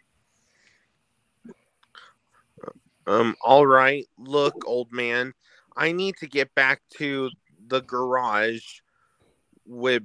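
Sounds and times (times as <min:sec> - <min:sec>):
person murmuring: 0:02.6 - 0:05.1.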